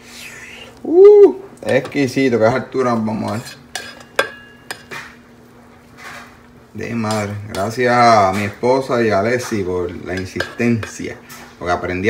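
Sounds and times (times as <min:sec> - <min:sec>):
spoon scraping a pot: 0:03.1 - 0:05.2, 0:09.3 - 0:11.6.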